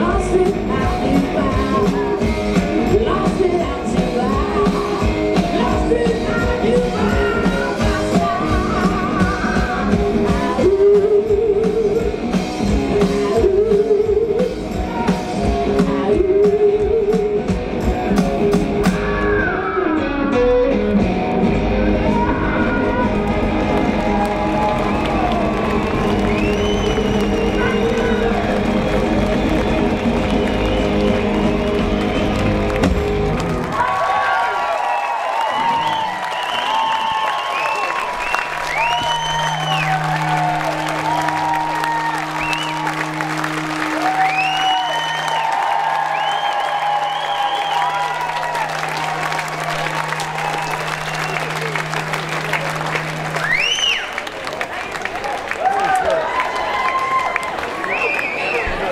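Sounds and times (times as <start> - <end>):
electric guitar blues song with drums: 0.0 - 24.1
audience applauding and cheering: 22.0 - 58.9.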